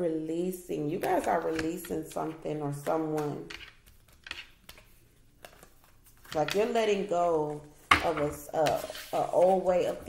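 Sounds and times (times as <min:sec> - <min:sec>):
tarot cards clicking and rustling: 0:01.0 - 0:02.0, 0:02.8 - 0:06.8.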